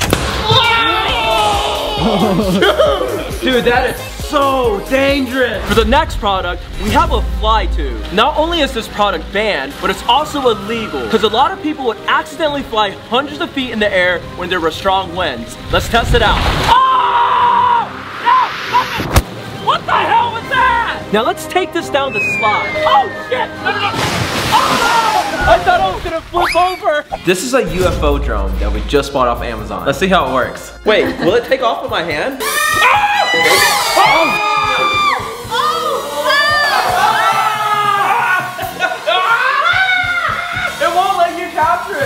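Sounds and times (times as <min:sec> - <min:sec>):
people shrieking and yelling: 0:00.3 - 0:03.4, 0:10.0 - 0:11.4, 0:16.6 - 0:19.1, 0:22.1 - 0:27.3, 0:32.4 - 0:41.3
steady rushing noise: 0:05.7 - 0:11.0, 0:17.8 - 0:20.8
long drawn-out screams: 0:16.7 - 0:18.8, 0:32.4 - 0:40.8
person screaming: 0:16.7 - 0:18.9.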